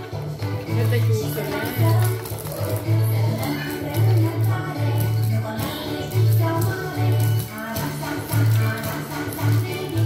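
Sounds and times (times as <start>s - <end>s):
upbeat background music: 0.0s - 10.0s.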